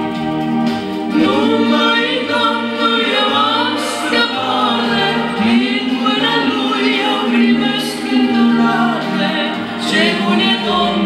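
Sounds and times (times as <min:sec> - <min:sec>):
man and woman singing a hymn: 0:01.1 - 0:11.0.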